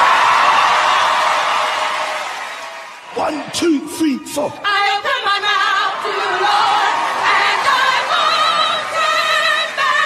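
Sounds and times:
audience applauding and cheering: 0.0s - 4.2s, 5.6s - 10.0s.

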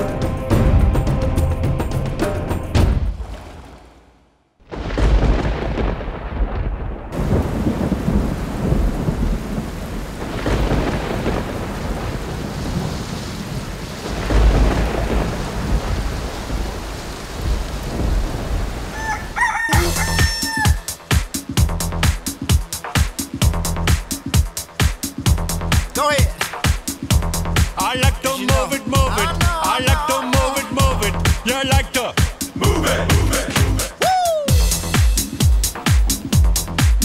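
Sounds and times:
heavy rain: 3.2s - 37.0s
rolling thunder: 4.6s - 18.9s
thunder claps: 4.6s - 18.9s
crowing call: 18.9s - 21.3s
dance music with steady beat: 19.7s - 37.0s.

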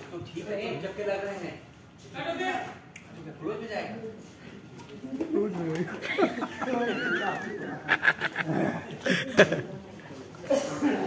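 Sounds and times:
people's voices: 3.9s - 11.0s.

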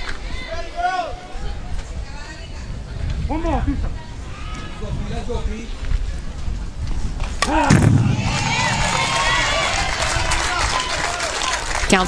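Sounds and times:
crowd shouting and cheering: 0.0s - 1.8s, 7.4s - 12.0s
bat cracking ball: 7.4s - 9.8s.

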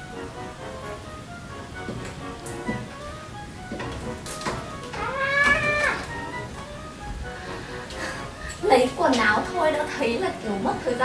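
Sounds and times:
background music: 0.0s - 11.0s
meow-like call: 4.9s - 6.1s.

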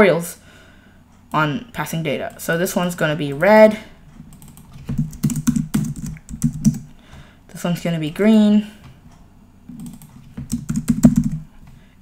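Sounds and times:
computer keyboard typing: 4.2s - 6.9s, 9.7s - 11.5s.

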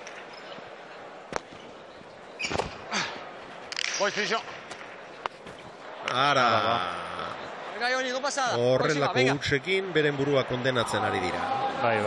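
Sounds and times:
spectators murmuring: 0.0s - 12.0s.

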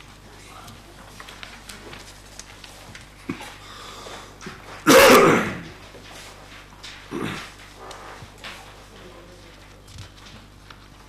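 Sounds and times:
person sneezing loudly: 4.8s - 5.8s.

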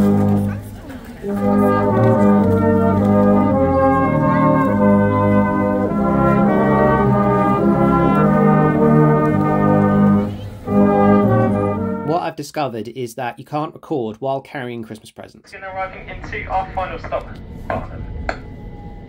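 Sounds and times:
brass band playing: 0.0s - 12.3s.

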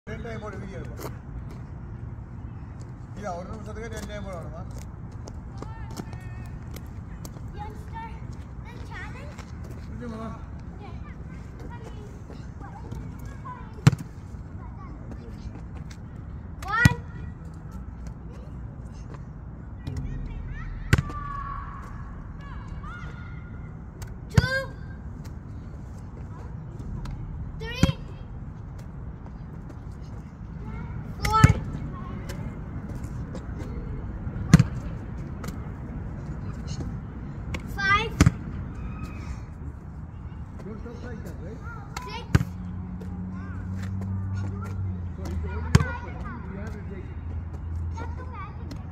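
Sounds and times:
low outdoor background: 0.0s - 48.9s
ball bouncing on asphalt: 12.8s - 14.3s, 15.0s - 18.2s, 19.8s - 25.4s, 26.2s - 30.2s, 31.1s - 38.6s, 41.9s - 47.7s.

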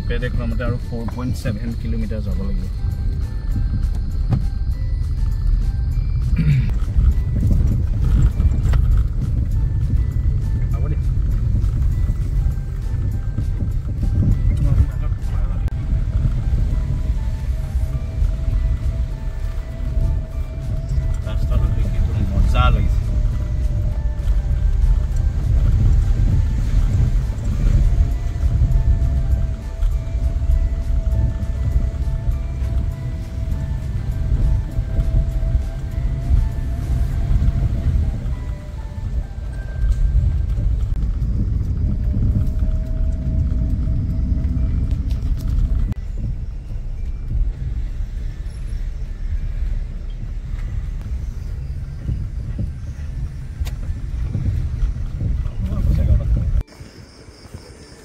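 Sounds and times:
engine and tyre rumble inside car: 0.0s - 58.0s.

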